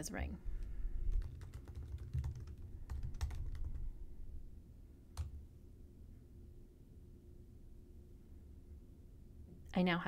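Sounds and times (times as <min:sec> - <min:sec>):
keyboard typing: 0:01.1 - 0:03.9.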